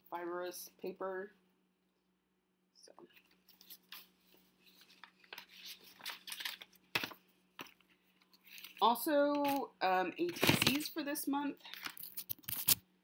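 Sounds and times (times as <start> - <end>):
stiff paper rustling and crackling: 3.2 - 9.6, 10.3 - 10.9.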